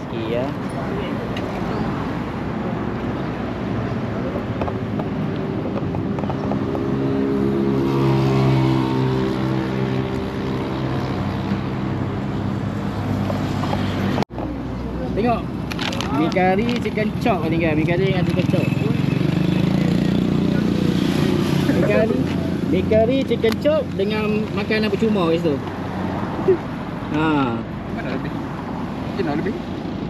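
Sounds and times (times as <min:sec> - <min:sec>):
road traffic passing: 0:00.0 - 0:30.0
vehicle engine passing close: 0:05.0 - 0:14.2.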